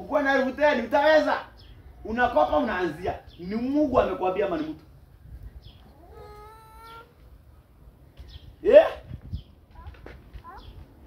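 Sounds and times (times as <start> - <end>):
cat meowing: 5.9 - 7.1.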